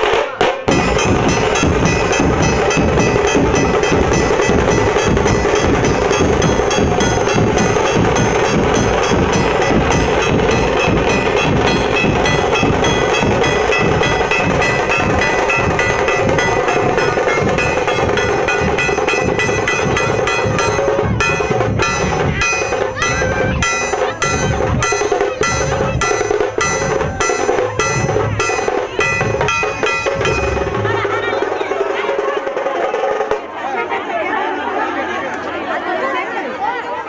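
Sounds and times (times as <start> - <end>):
dhol drums beaten with sticks: 0.0 - 33.5
sustained melodic music: 0.7 - 31.5.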